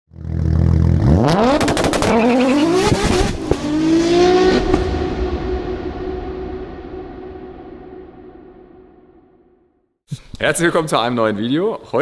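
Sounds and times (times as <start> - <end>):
car engine accelerating: 0.1 - 8.8
sharp exhaust cracks: 0.2 - 3.7.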